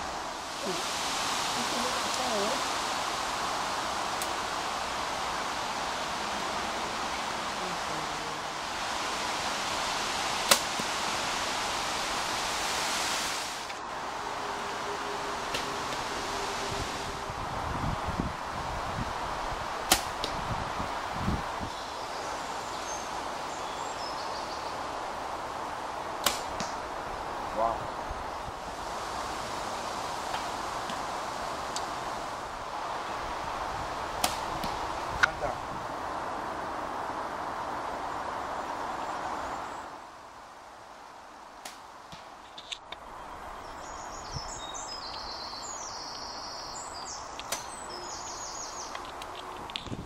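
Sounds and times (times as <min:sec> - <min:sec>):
rustle of air and leaves: 0:00.0 - 0:50.0
bow shot snaps: 0:10.5 - 0:10.9, 0:19.9 - 0:20.4, 0:26.2 - 0:26.8, 0:34.2 - 0:35.4.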